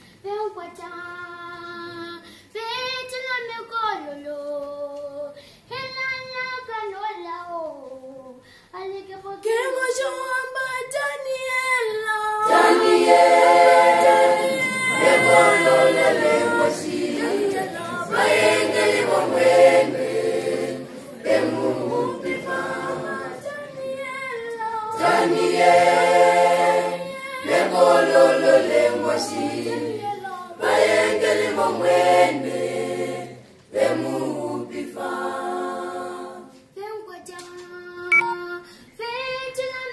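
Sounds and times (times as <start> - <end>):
choir singing unaccompanied: 12.4 - 36.6.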